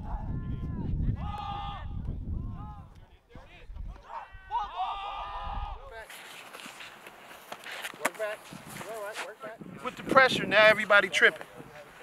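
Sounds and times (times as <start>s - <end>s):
wind rumble on microphone: 0.0s - 6.0s, 9.5s - 11.0s
person shouting: 1.2s - 2.0s, 4.1s - 5.9s.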